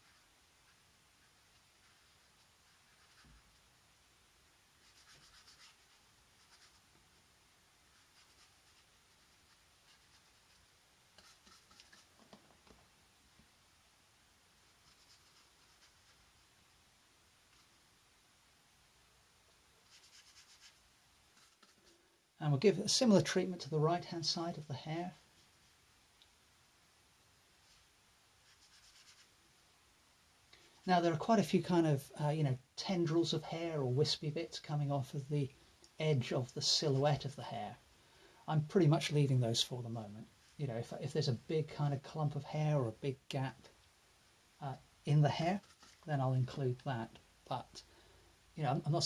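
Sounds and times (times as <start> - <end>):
brush strokes on paper: 0.0 - 3.8, 4.7 - 12.2, 14.5 - 16.6, 17.4 - 17.8, 19.8 - 22.1, 23.2 - 25.9, 27.5 - 29.4, 45.1 - 46.6.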